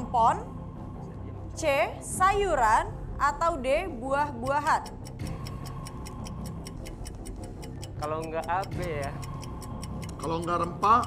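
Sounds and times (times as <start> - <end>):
rapid clock ticking: 4.0 - 11.0
steady music bed: 4.0 - 11.0.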